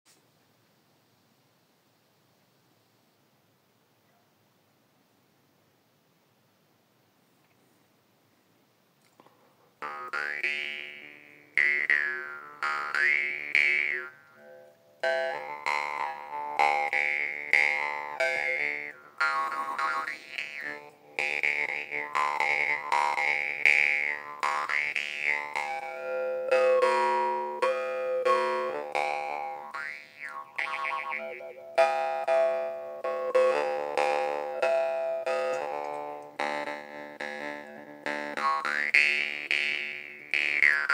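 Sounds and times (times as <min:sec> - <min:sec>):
jaw harp twanging: 0:09.8 - 0:36.6.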